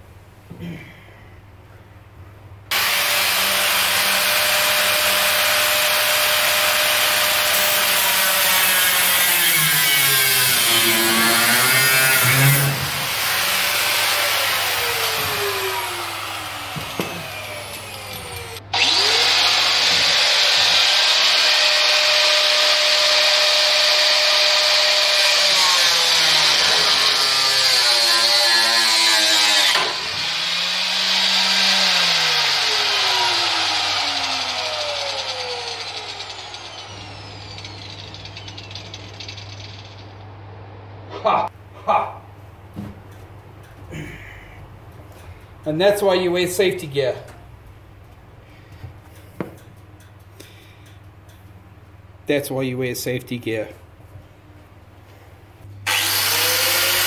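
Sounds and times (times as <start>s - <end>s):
electric power tool motor: 2.7s - 40.0s, 55.9s - 57.0s.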